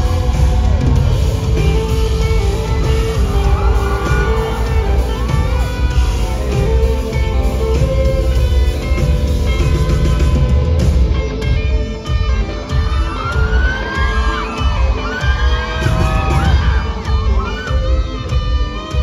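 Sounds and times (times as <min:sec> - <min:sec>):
guitar: 0:00.0 - 0:19.0
heavy bass: 0:00.0 - 0:19.0
live band playing: 0:00.0 - 0:19.0.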